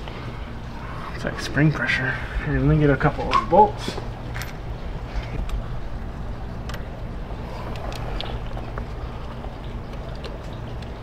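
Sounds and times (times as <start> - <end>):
low background rumble: 4.0 - 11.0.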